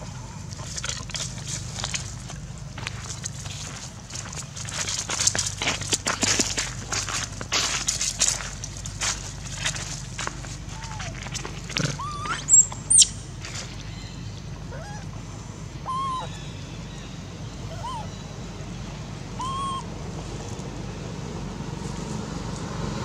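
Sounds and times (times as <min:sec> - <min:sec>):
leaves rustling and scraping: 0:00.0 - 0:14.1, 0:21.6 - 0:23.0
baby monkey squealing: 0:11.8 - 0:13.2, 0:14.7 - 0:15.1, 0:15.8 - 0:16.5, 0:17.7 - 0:18.2, 0:19.4 - 0:19.9
faint short calls: 0:15.8 - 0:16.6, 0:17.6 - 0:18.2, 0:19.4 - 0:19.9.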